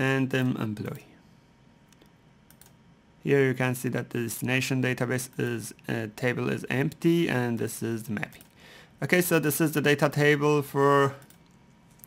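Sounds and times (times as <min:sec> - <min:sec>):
computer mouse clicks: 0:01.9 - 0:02.8, 0:11.2 - 0:12.0.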